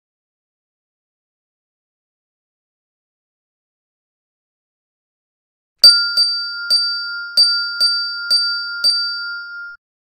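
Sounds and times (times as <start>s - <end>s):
small bell ringing: 5.8s - 9.8s.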